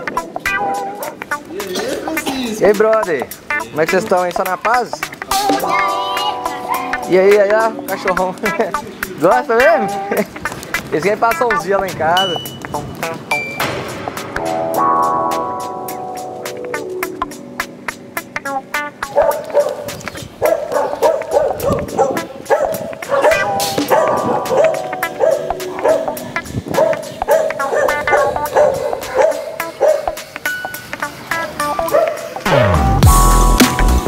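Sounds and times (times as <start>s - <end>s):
background music: 0.0s - 34.0s
dog barking: 0.6s - 1.2s, 19.0s - 30.2s, 31.8s - 32.4s.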